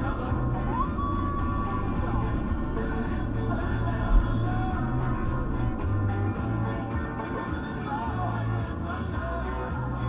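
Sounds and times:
car radio music: 0.0s - 10.0s.

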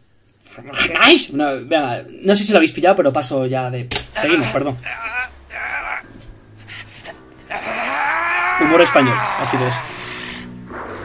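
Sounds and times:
man yelling: 4.2s - 6.1s, 7.5s - 10.0s
man growling: 4.2s - 10.5s.

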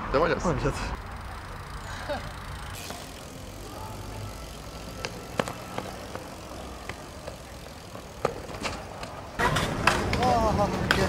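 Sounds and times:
outdoor background noise: 0.0s - 11.0s
bike knocks and clicks: 1.0s - 11.0s.

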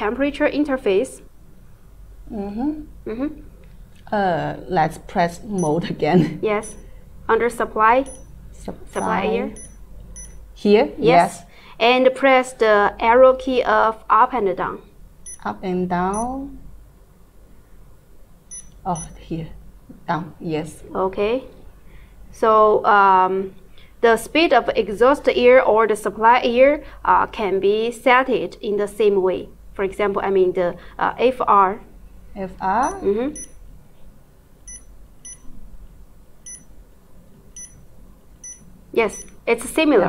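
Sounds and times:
low steady hum: 0.0s - 40.0s
short high key-press beeps: 6.6s - 6.8s, 8.0s - 8.3s, 9.0s - 10.4s, 18.5s - 19.2s, 34.7s - 35.5s, 36.5s - 36.7s, 37.6s - 37.8s, 38.4s - 39.4s.

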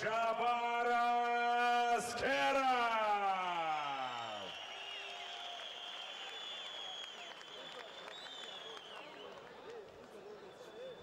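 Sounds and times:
crowd cheering and whistling: 3.4s - 11.0s.

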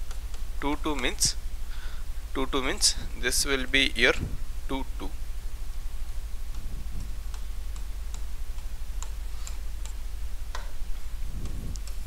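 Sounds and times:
steady low hum: 0.0s - 12.0s
stylus tapping on screen: 6.5s - 12.0s.

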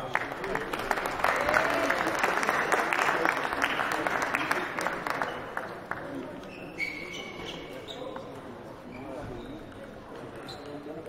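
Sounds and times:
murmur of voices echoing: 0.0s - 11.0s
short high squeaks: 6.4s - 8.1s.

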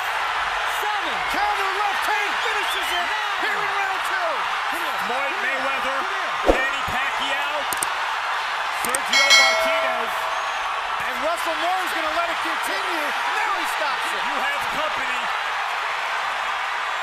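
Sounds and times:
arena crowd cheering and shouting: 0.0s - 17.0s
sharp knock: 6.4s - 6.8s.

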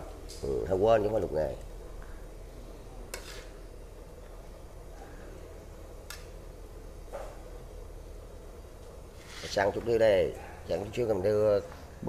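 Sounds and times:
metal spatulas scraping a wok: 3.1s - 3.5s
sharp metal scrapes: 3.1s - 3.5s.

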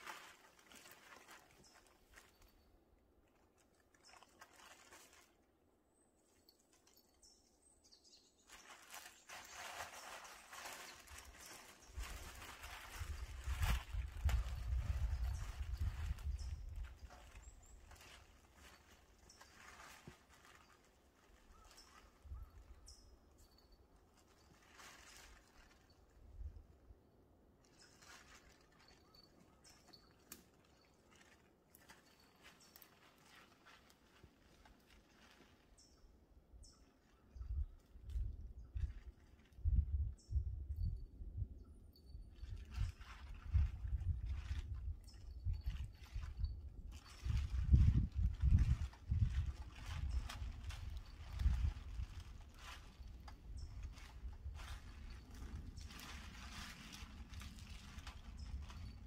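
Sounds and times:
dry leaves and twigs crackling: 0.0s - 40.4s, 42.3s - 59.0s
wind gust rumbling on microphone: 11.8s - 18.0s, 37.4s - 59.0s.

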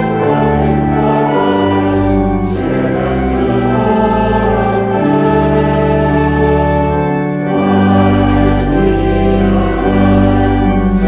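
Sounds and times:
choir singing a hymn: 0.0s - 11.0s
organ sustained chords: 0.0s - 11.0s.

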